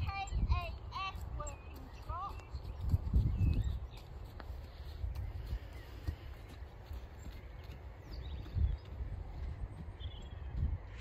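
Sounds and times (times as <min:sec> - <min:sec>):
horse hooves thudding: 0:00.0 - 0:11.0.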